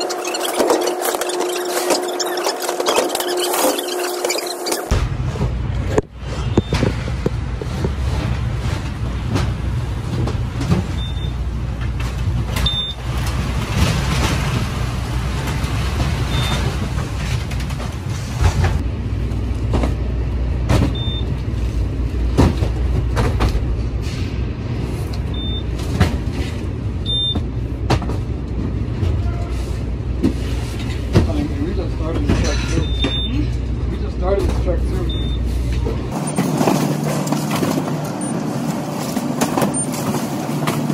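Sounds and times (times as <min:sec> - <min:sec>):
low rumble of machinery: 0:00.0 - 0:40.9
cardboard packages thudding: 0:36.2 - 0:40.9.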